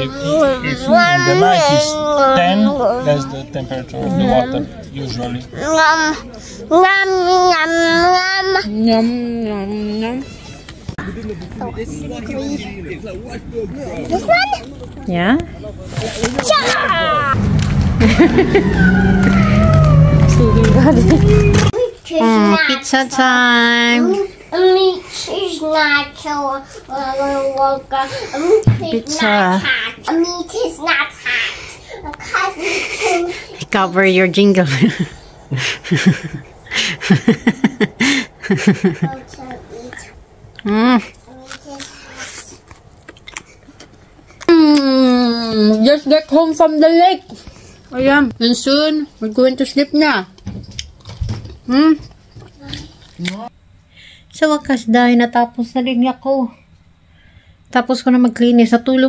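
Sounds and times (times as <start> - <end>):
chewing and mouth clicks: 41.4 - 44.5.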